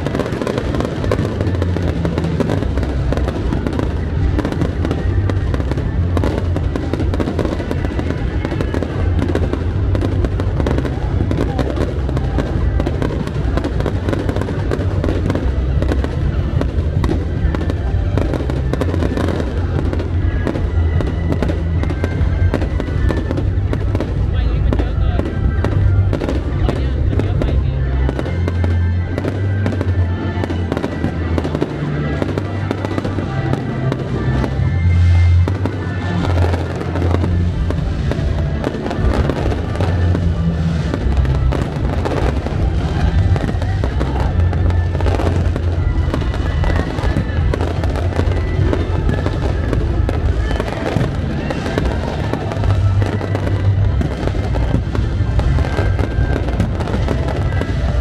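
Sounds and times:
fireworks bursting and crackling: 0:00.0 - 0:58.0
loud music with heavy bass: 0:00.0 - 0:58.0.

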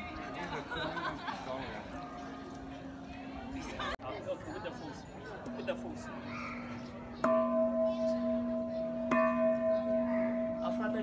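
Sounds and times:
large temple bell ringing: 0:04.4 - 0:11.0.

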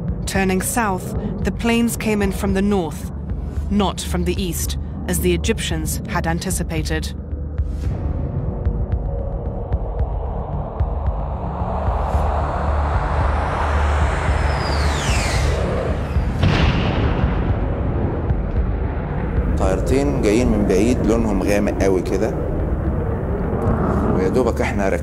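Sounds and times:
jet aircraft rumble: 0:08.0 - 0:25.0
falling whistle: 0:13.6 - 0:16.3.

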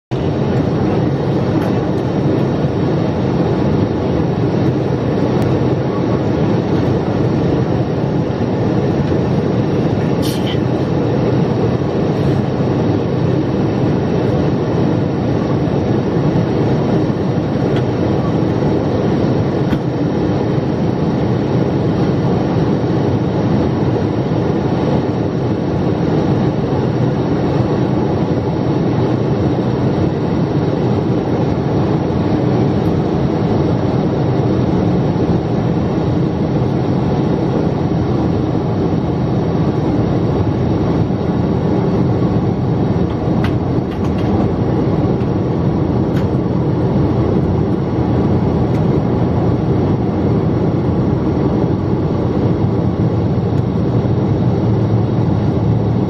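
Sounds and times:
airplane cabin engine roar: 0:00.0 - 0:56.0.

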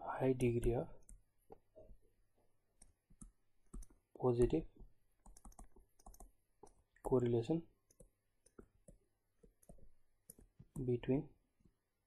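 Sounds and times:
person speaking: 0:10.7 - 0:11.4.

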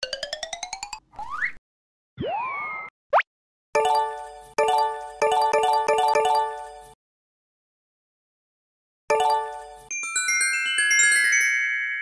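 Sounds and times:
bright chiming jingle: 0:09.1 - 0:12.0.

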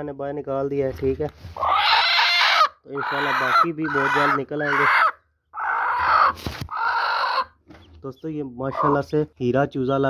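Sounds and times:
hen squawking harshly: 0:01.6 - 0:07.6.

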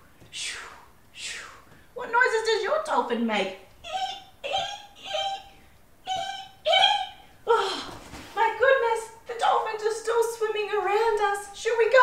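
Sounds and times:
woman imitating dolphin calls: 0:03.8 - 0:07.9.

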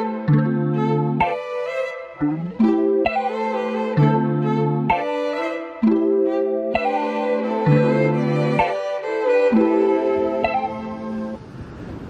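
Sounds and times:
instrumental music sustained chords: 0:00.0 - 0:11.4.

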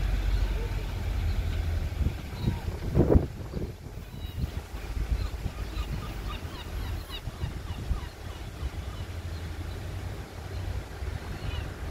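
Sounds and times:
small birds chirping: 0:05.1 - 0:11.8.

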